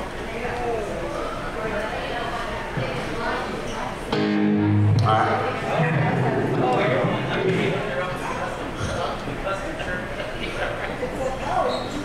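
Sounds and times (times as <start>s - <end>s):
people talking: 0.0s - 12.0s
electric guitar sustained note: 4.1s - 7.4s.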